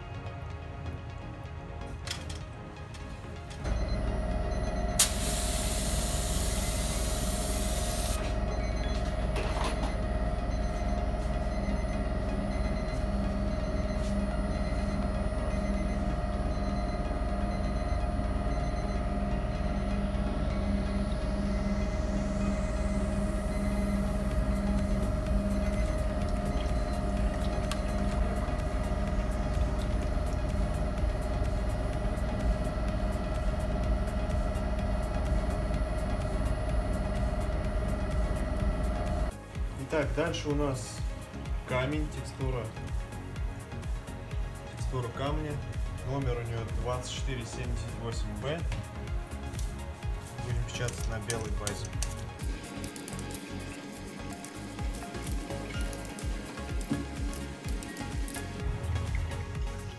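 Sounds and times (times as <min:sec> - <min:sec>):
low machine drone: 0:03.3 - 0:39.6, 0:47.5 - 0:59.9
spray gun hissing: 0:05.0 - 0:08.3.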